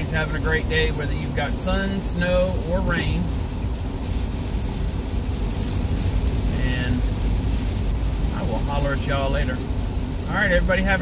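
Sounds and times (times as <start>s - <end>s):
car cabin road noise: 0.0s - 11.0s.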